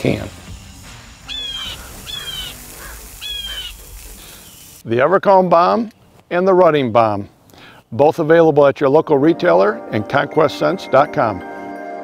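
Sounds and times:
faint steady hiss: 0:00.0 - 0:08.8
bird harsh calls: 0:00.6 - 0:04.8.

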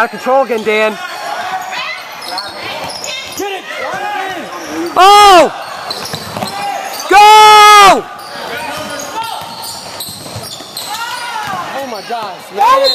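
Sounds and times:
faint shouts: 0:01.0 - 0:05.7
loud drawn-out shout: 0:03.9 - 0:05.7, 0:06.6 - 0:08.1
basketball bouncing on court: 0:05.9 - 0:06.5, 0:08.7 - 0:11.8.

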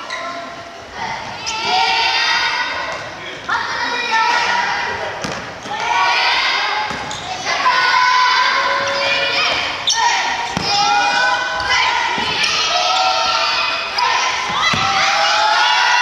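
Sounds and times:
children shouting: 0:00.0 - 0:03.0, 0:05.6 - 0:16.0.

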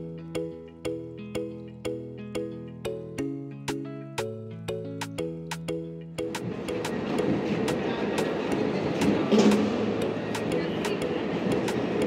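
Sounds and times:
airport terminal din: 0:06.3 - 0:12.0.

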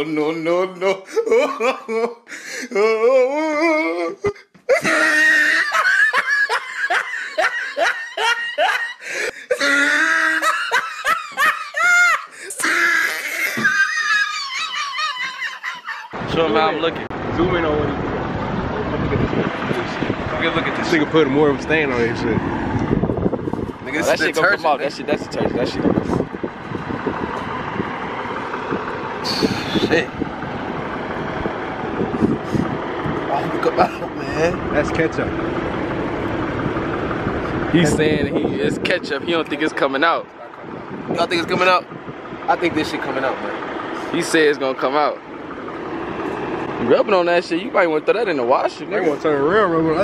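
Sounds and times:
hearty human laughter: 0:00.8 - 0:16.2, 0:33.6 - 0:34.3
vehicle traffic: 0:04.7 - 0:50.0.

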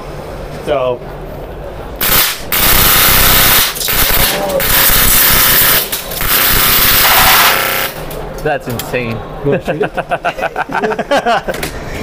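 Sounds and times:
airsoft rifle firing full auto: 0:02.0 - 0:08.0.

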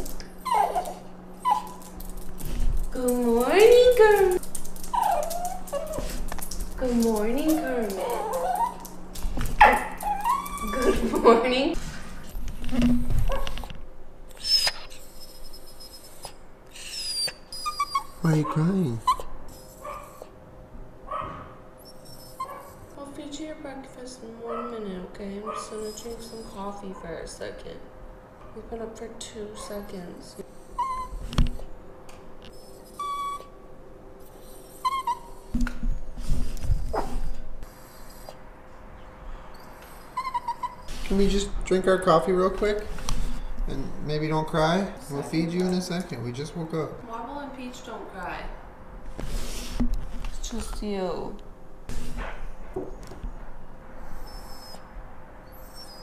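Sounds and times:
dog whining: 0:00.0 - 0:09.0, 0:09.6 - 0:11.7, 0:14.3 - 0:20.4, 0:21.1 - 0:23.0, 0:25.5 - 0:27.1, 0:30.4 - 0:31.7, 0:32.4 - 0:33.6, 0:34.2 - 0:38.4, 0:39.4 - 0:41.5, 0:53.0 - 0:56.0.

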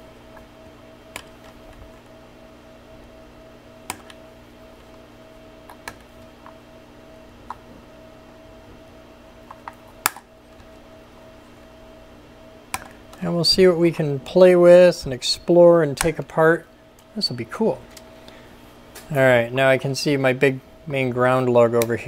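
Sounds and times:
steady background hum: 0:00.0 - 0:22.0
pliers clicking on wires: 0:03.9 - 0:04.2, 0:09.5 - 0:10.7, 0:12.7 - 0:13.0.

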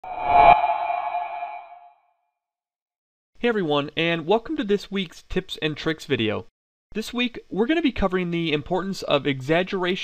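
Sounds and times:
whoosh: 0:00.0 - 0:01.9.

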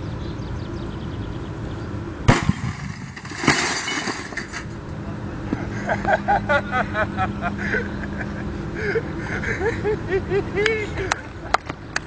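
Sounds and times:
wooden pole smashing television: 0:02.3 - 0:04.7
breaking and clattering crash: 0:02.3 - 0:04.8.

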